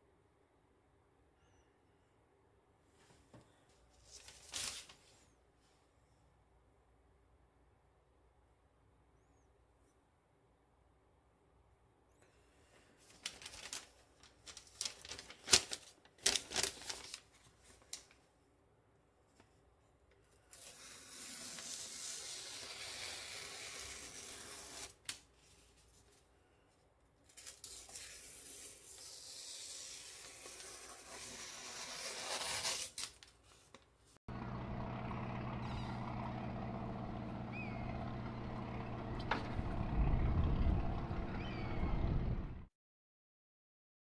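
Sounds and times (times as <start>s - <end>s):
knife slicing through newspaper: 20.6s - 25.1s, 27.4s - 33.2s
low engine drone: 34.3s - 42.7s.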